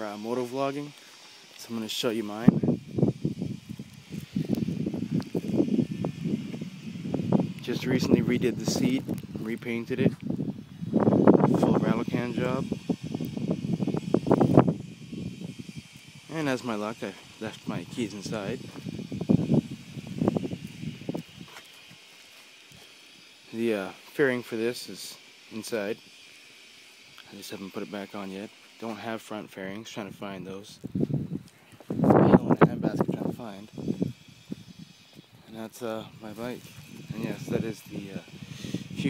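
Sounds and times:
wind buffeting microphone: 2.2s - 22.1s, 30.1s - 39.0s.

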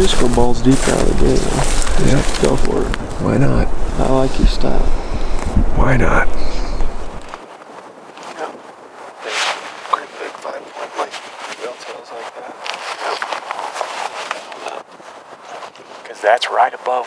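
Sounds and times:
people talking quietly: 0.0s - 7.3s.

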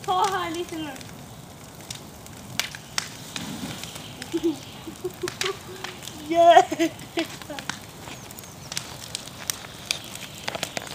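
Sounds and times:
burning wood cracking: 0.0s - 10.9s
rush of flame: 0.0s - 10.9s.

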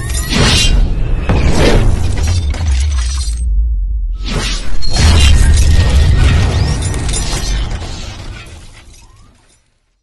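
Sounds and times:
deep bass drone: 2.4s - 4.3s.

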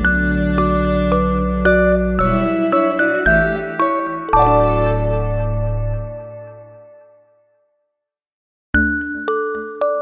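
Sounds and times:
glockenspiel-style bell melody: 0.0s - 6.3s, 8.8s - 10.0s.

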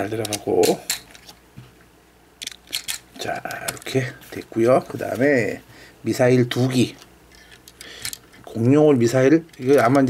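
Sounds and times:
plastic toy bricks clicking: 2.4s - 3.0s.

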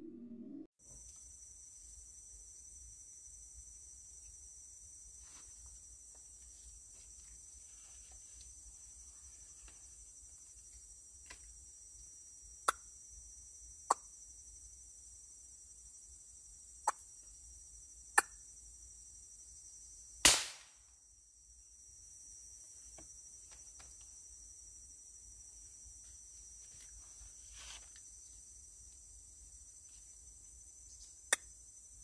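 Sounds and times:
insects droning: 0.8s - 32.0s
air rifle shot: 20.2s - 20.8s.

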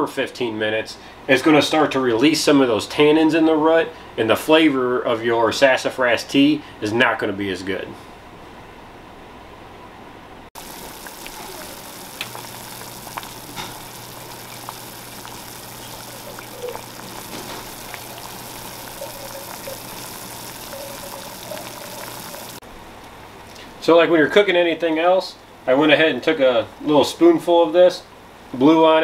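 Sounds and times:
low steady hum: 10.6s - 22.6s
water boiling in a pot: 10.6s - 22.6s.

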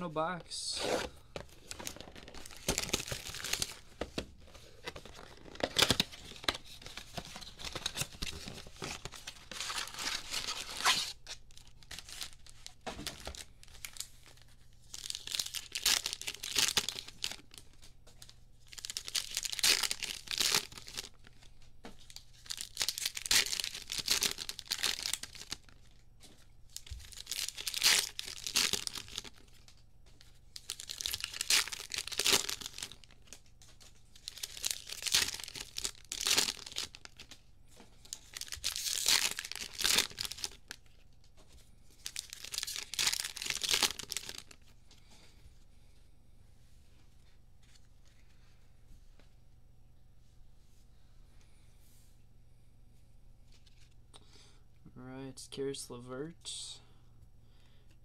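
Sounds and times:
foil packs ripping and crinkling: 1.5s - 3.9s, 4.7s - 17.8s, 18.6s - 26.0s, 26.7s - 29.8s, 30.6s - 37.4s, 38.0s - 40.8s, 41.9s - 44.7s.

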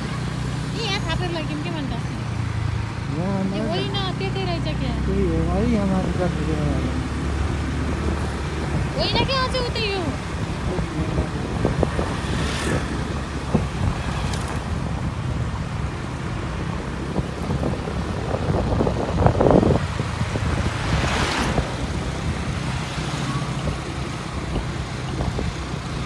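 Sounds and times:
wind buffeting microphone: 7.6s - 26.0s.

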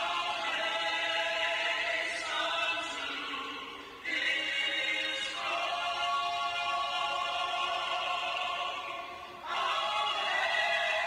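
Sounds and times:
vocal group singing harmony: 0.0s - 11.0s.

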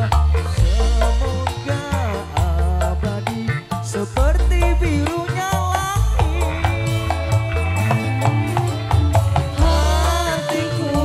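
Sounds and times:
deep bass: 0.0s - 11.0s
hand drum beats: 0.0s - 11.0s
wavering melody line: 0.0s - 11.0s.

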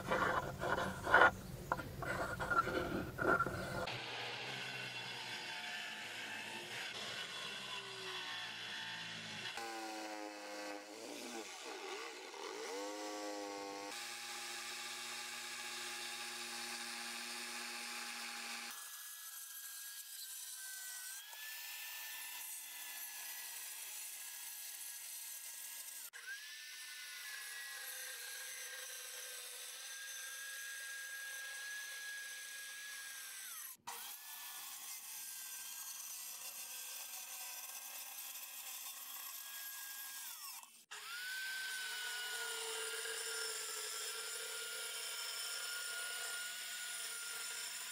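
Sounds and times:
circular saw cutting wood: 0.0s - 47.9s.

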